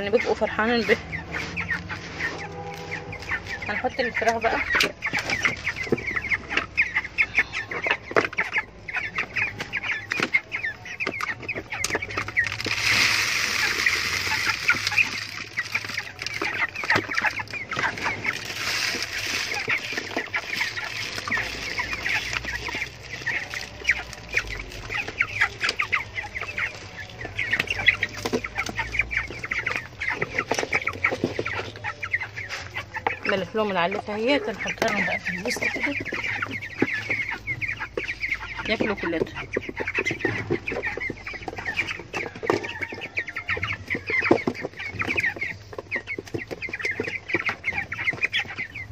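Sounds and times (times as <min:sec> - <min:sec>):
grain feed rustling: 0:00.0 - 0:48.8
chickens peeping and clucking: 0:00.0 - 0:48.9.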